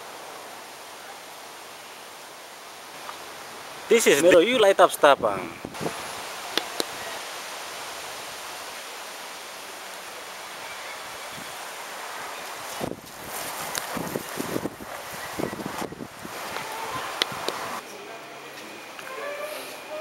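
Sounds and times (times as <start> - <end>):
steady hiss: 0.0 - 20.0.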